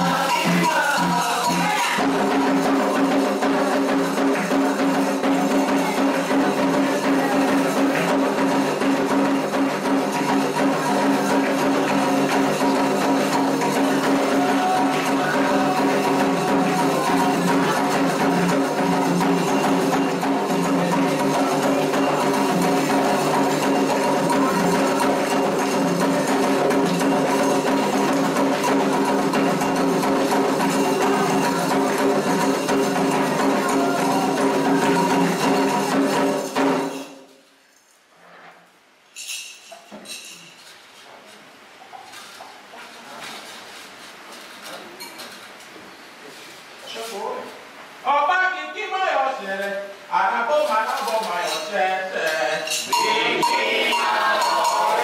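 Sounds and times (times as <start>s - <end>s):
group singing: 0.0s - 3.8s, 10.3s - 36.2s, 51.7s - 55.0s
bell playing rhythm: 0.0s - 37.3s, 52.6s - 55.0s
hand drums: 0.0s - 37.3s, 52.6s - 55.0s
struck bell: 52.7s - 55.0s.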